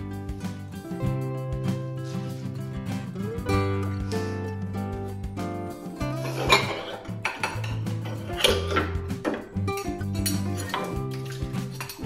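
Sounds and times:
acoustic background music: 0:00.0 - 0:12.0
dishes clinking in sink: 0:06.2 - 0:12.0.

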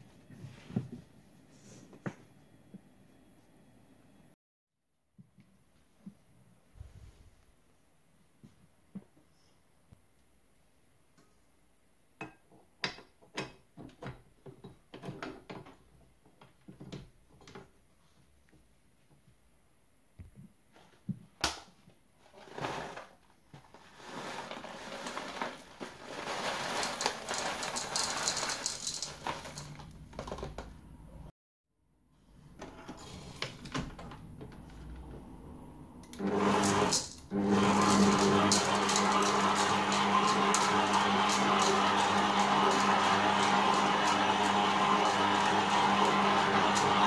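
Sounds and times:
bag crinkling: 0:23.9 - 0:29.8
sugar pouring into metal bowl: 0:26.2 - 0:29.8
stand mixer motor hum: 0:36.2 - 0:47.0.

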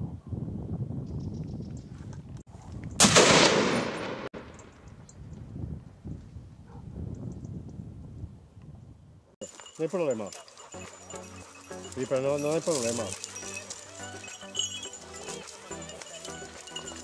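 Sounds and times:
rifle shot with echo: 0:03.0 - 0:04.5.

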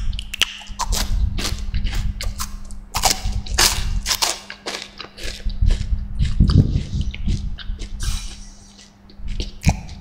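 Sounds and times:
crunching of chocolate wafer: 0:00.2 - 0:10.0.

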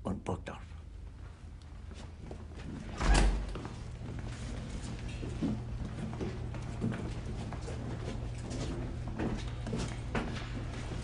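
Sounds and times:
steady low hum: 0:00.0 - 0:11.0
footsteps on hard floor: 0:01.2 - 0:11.0.

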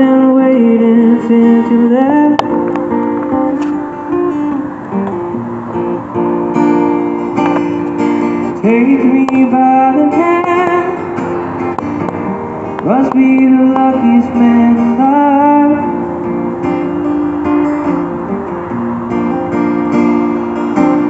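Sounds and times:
acoustic guitar playing: 0:00.0 - 0:21.0.

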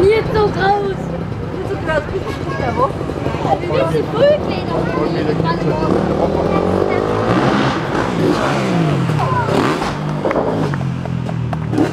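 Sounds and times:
motocross engines revving: 0:00.0 - 0:11.9.

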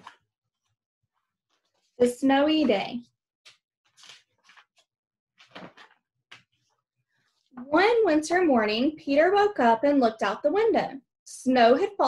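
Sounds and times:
book pages rustling: 0:00.0 - 0:02.0, 0:03.5 - 0:07.6.

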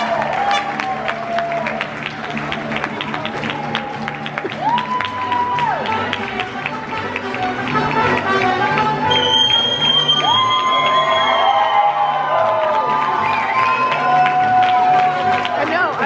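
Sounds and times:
trumpets: 0:00.0 - 0:01.2
violins: 0:00.0 - 0:10.7.

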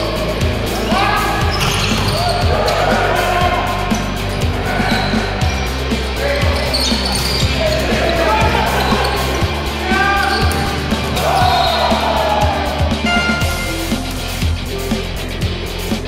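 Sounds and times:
voices: 0:00.0 - 0:15.3
music: 0:00.0 - 0:16.0
volleyball hits: 0:06.8 - 0:14.3.

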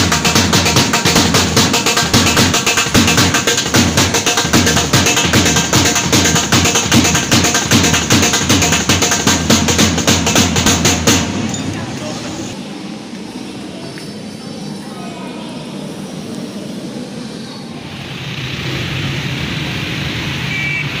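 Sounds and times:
music: 0:00.0 - 0:11.8
indistinct voices: 0:00.0 - 0:19.4
loud hiss: 0:15.8 - 0:21.0
faint high beeps: 0:20.5 - 0:21.0.

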